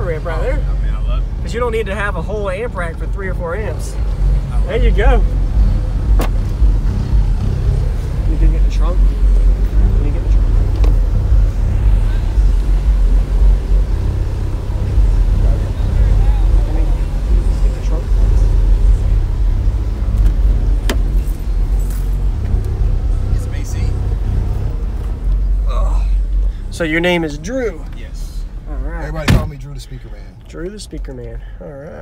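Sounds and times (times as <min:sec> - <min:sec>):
voices: 0:00.0 - 0:32.0
loud low rumble: 0:00.8 - 0:27.6
car door latch click: 0:06.2 - 0:06.5, 0:20.2 - 0:21.1, 0:29.2 - 0:29.6.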